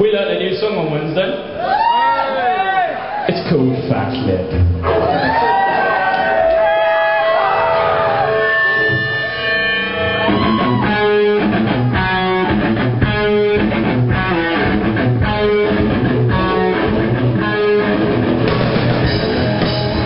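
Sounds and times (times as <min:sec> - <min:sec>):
live rock band: 0:04.5 - 0:20.0
electric guitar chord riff: 0:07.9 - 0:20.0.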